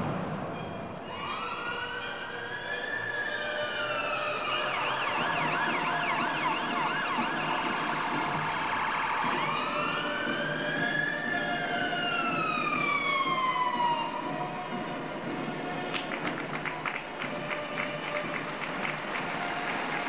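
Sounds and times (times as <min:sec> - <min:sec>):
ambulance siren: 0:01.1 - 0:20.0.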